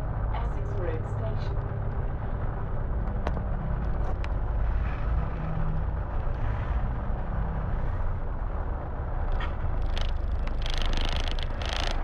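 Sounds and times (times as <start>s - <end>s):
bus engine low rumble: 0.0s - 12.0s
road noise: 0.0s - 12.0s.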